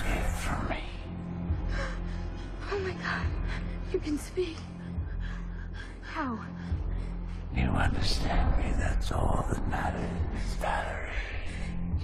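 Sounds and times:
low droning film score: 0:00.0 - 0:12.0.

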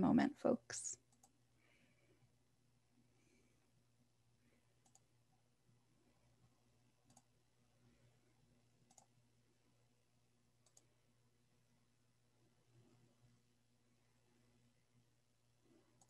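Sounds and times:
computer mouse clicks: 0:01.0 - 0:01.4, 0:04.8 - 0:05.1, 0:07.0 - 0:07.4, 0:08.8 - 0:09.2, 0:10.6 - 0:11.0.

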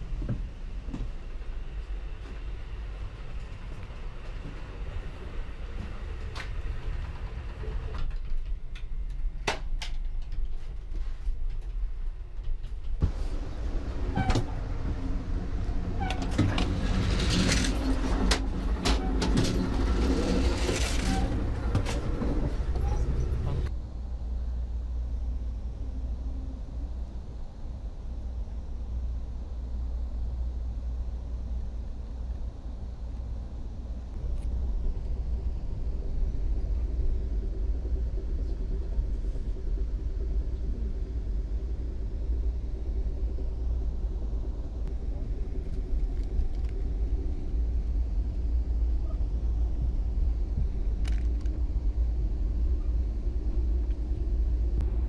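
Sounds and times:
train rumble from inside coach: 0:00.0 - 0:55.0.

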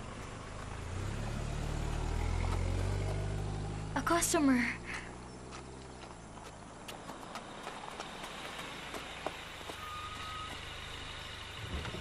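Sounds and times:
van engine rumble: 0:00.0 - 0:12.0
light footsteps: 0:04.9 - 0:10.8.

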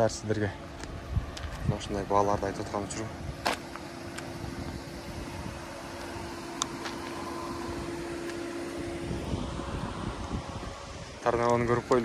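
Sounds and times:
outdoor background noise: 0:00.0 - 0:12.0
steady mechanical hum: 0:00.0 - 0:12.0.

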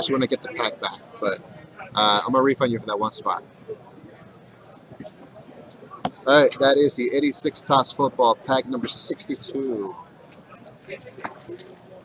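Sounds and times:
plastic bag crinkling: 0:10.2 - 0:12.0.

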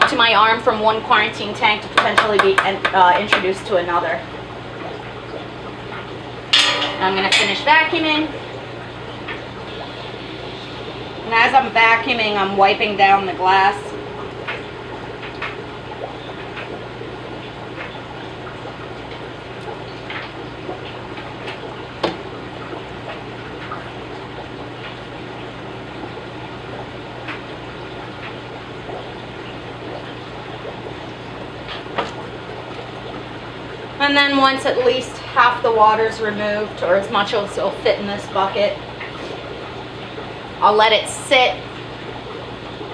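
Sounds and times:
water siphoning into bucket: 0:00.1 - 0:42.9.

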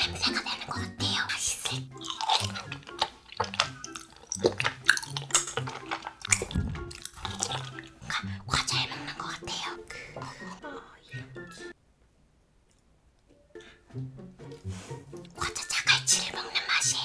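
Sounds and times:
background music: 0:00.0 - 0:11.8, 0:13.3 - 0:17.0
wet mouth sounds: 0:00.1 - 0:09.4
person chewing food: 0:01.7 - 0:08.7.

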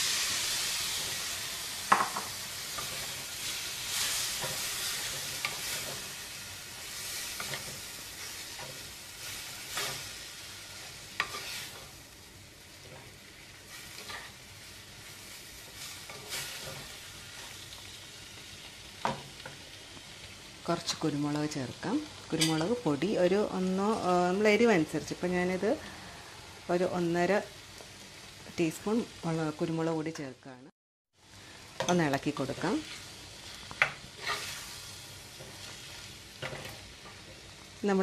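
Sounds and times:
squid frying in a pot: 0:00.0 - 0:38.0
spatula stirring and scraping: 0:01.9 - 0:12.0, 0:12.7 - 0:17.6, 0:32.5 - 0:37.5.

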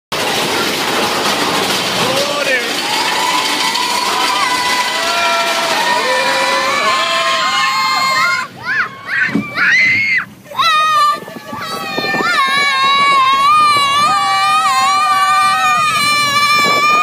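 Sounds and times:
roller coaster rush and rattle: 0:00.1 - 0:17.0
riders yelling and screaming: 0:01.9 - 0:17.0.

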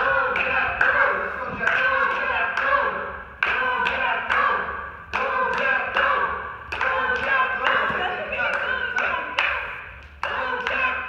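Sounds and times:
background voices: 0:00.0 - 0:11.0
sharp claps ringing: 0:00.0 - 0:11.0.

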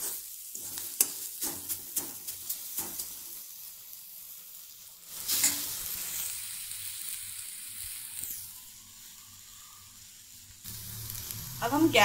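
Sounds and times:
steel spatula tapping a pan: 0:00.0 - 0:03.2
masala sizzling in oil: 0:00.0 - 0:12.0.

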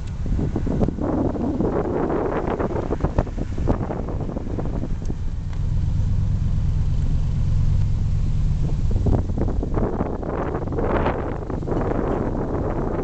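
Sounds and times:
car engine and road rumble: 0:00.0 - 0:13.0.

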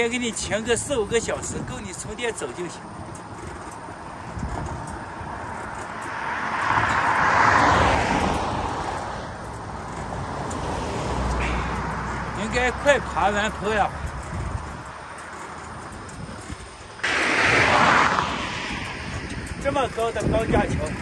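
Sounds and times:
car driving past: 0:05.2 - 0:14.3, 0:16.9 - 0:21.0.

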